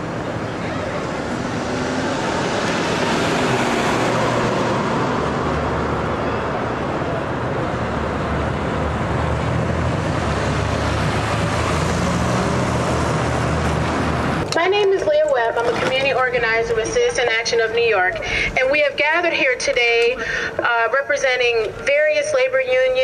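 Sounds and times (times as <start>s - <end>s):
road traffic noise: 0.0s - 23.0s
vehicle engine humming: 0.0s - 23.0s.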